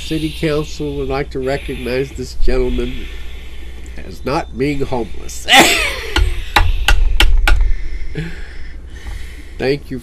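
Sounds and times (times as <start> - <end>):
gavel knocking: 6.2 - 7.7.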